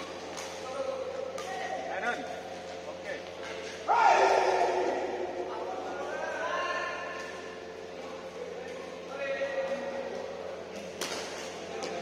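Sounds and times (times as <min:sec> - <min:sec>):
rackets hitting shuttlecock: 0:00.0 - 0:01.9, 0:09.6 - 0:12.0
players' voices: 0:00.0 - 0:12.0.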